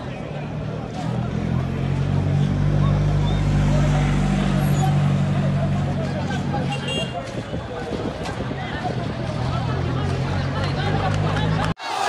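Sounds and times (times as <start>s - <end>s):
vehicle engine humming: 0.0s - 11.8s
crowd chatter: 0.0s - 12.0s.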